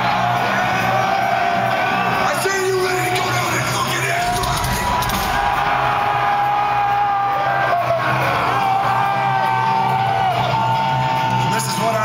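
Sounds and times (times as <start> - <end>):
crowd yelling and whooping: 0.0 - 12.0
live metal band: 2.1 - 12.0.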